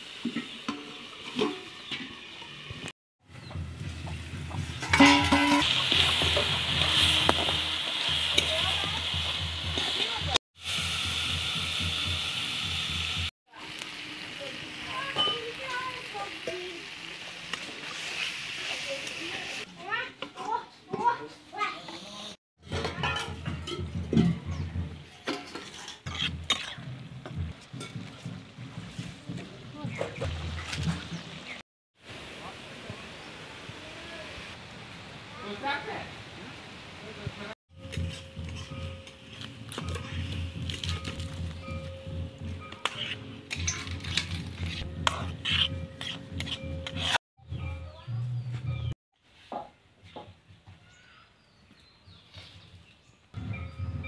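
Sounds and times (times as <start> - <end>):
curry sizzling in a pan: 4.5 - 20.0
metal spatula scraping pan: 4.8 - 7.2, 22.7 - 26.9, 37.8 - 41.8, 42.6 - 47.2.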